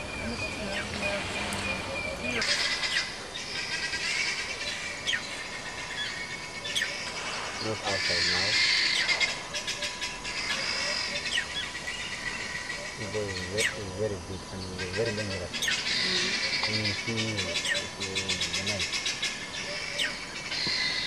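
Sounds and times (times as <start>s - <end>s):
wild birds singing: 0.0s - 21.0s.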